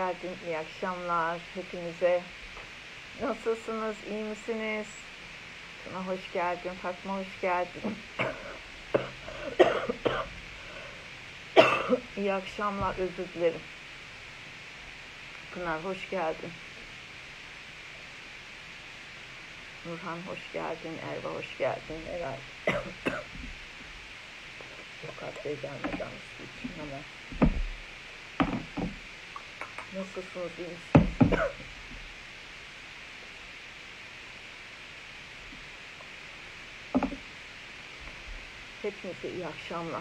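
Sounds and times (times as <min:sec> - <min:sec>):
woman coughing: 0:07.8 - 0:10.3, 0:11.6 - 0:12.1, 0:22.7 - 0:23.4, 0:31.3 - 0:31.6
heavy thud on phone microphone: 0:27.3 - 0:27.8, 0:31.0 - 0:31.4.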